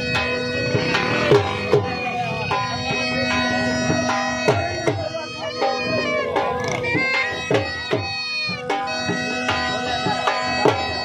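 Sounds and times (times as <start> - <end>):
bagpipe band music: 0.0 - 11.0
drum beats: 0.0 - 11.0.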